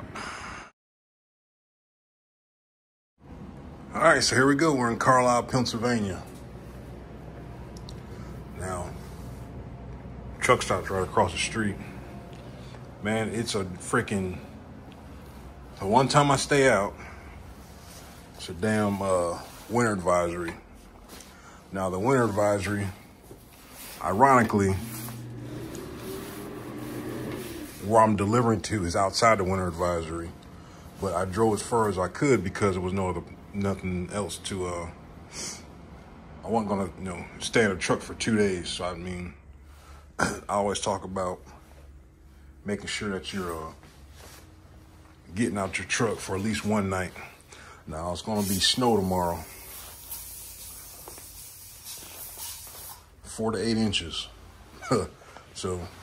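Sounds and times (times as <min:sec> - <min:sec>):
low hum: 0:24.0 - 0:28.3
man's drawn-out uhh: 0:24.2 - 0:28.0
steady hiss: 0:48.3 - 0:53.2.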